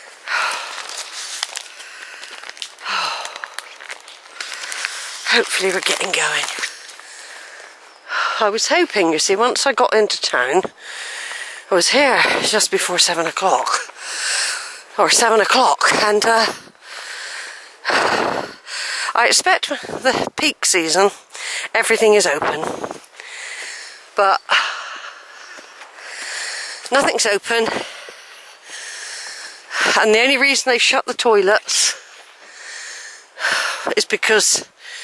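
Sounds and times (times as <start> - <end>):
breathy exhalations: 0.0 - 8.5, 10.7 - 12.6, 13.8 - 15.0, 16.4 - 20.1, 21.1 - 21.8, 22.6 - 27.0, 27.6 - 30.1, 31.8 - 33.9, 34.7 - 35.0
person sighing: 2.8 - 3.6.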